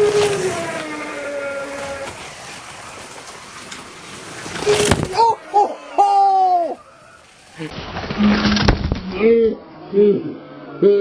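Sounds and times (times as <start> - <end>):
sudden loud noise: 7.7 - 9.6.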